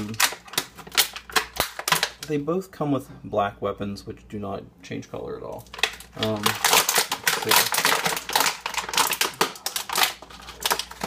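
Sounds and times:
plastic pieces clicking: 0.0 - 2.3, 5.6 - 11.0.

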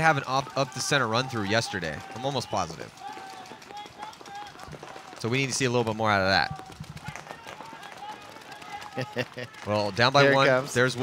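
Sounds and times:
paintball markers firing: 0.2 - 10.0.

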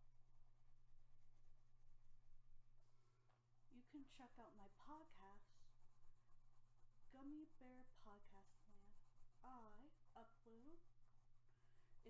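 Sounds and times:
colored pencil scratching on paper: 0.0 - 3.1, 3.8 - 12.0
low electrical hum: 0.0 - 12.0
soft voice: 7.1 - 10.9.

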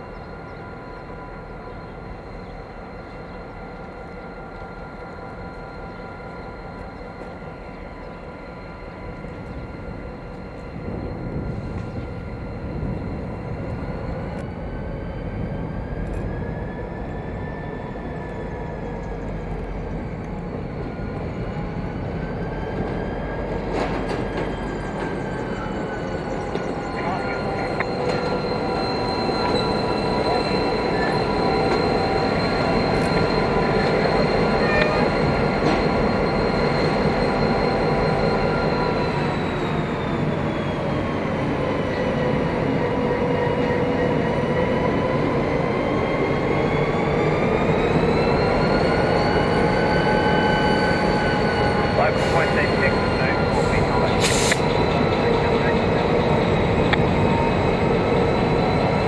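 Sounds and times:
diesel locomotive engine running: 0.0 - 59.0.

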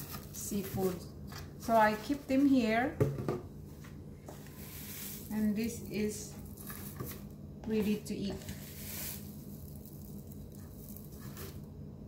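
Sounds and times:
plastic jar rustling: 0.0 - 2.4, 4.3 - 11.7.

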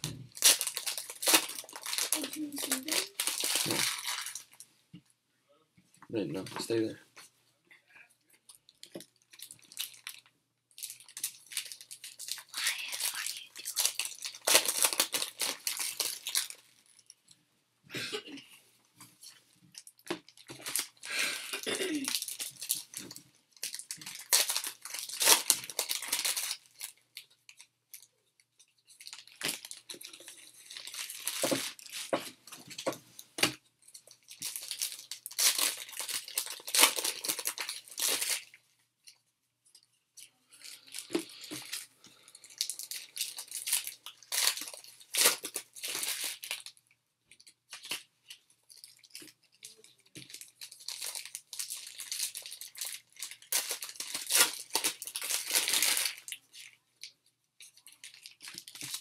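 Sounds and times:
foil wrappers tearing and crinkling: 0.3 - 4.6, 10.8 - 16.8, 20.3 - 21.2, 22.0 - 27.7, 28.9 - 32.1, 33.9 - 38.6, 40.7 - 46.7, 48.7 - 56.8, 57.6 - 59.0.

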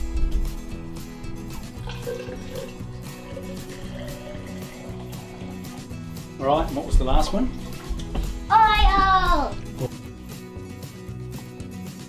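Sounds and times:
background music: 0.0 - 12.0
water pouring into a glass: 1.5 - 5.9.

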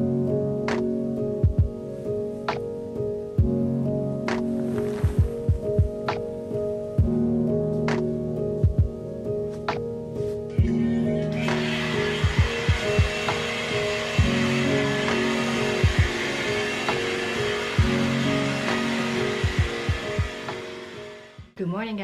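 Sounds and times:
soft background music: 0.0 - 22.0
hair dryer blowing: 10.6 - 21.6.

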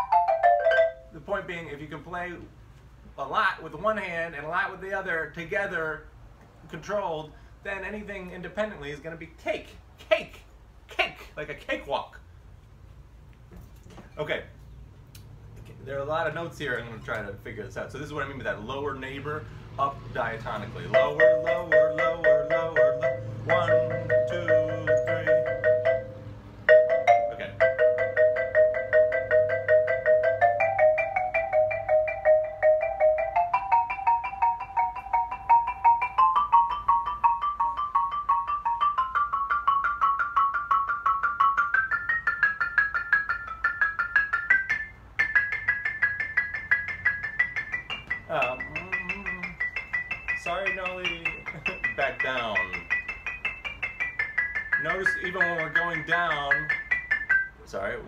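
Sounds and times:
person speaking: 6.7 - 12.2, 15.6 - 22.8, 48.3 - 49.8, 50.4 - 53.0, 54.8 - 56.8
xylophone double stops: 20.9 - 39.1, 44.6 - 57.6.

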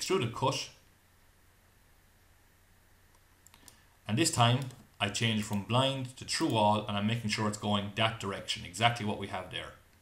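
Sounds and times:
low steady hum: 0.0 - 10.0
computer mouse clicks: 3.1 - 3.9, 4.5 - 5.7.

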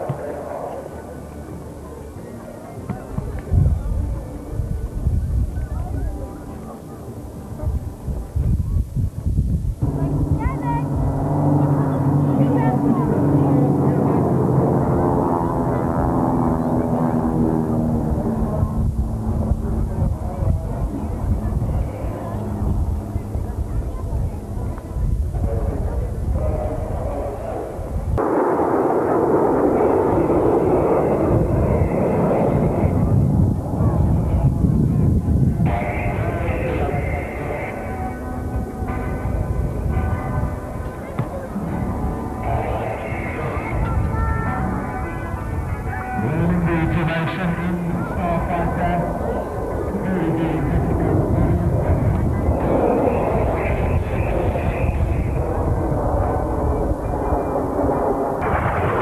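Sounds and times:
propeller planes flying overhead: 0.0 - 59.0.

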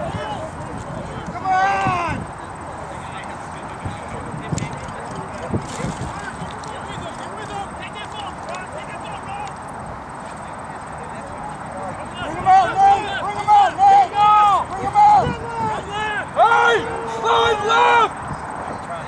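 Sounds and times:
faint distant voices: 0.0 - 19.0
voices shouting calls: 0.0 - 19.0.

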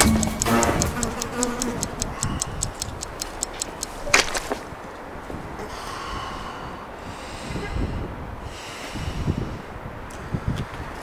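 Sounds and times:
fast clock-like ticking: 0.0 - 4.1.

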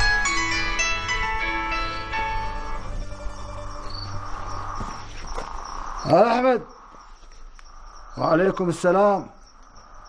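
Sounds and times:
tune playing: 0.0 - 4.6
crickets chirping: 0.0 - 10.0.

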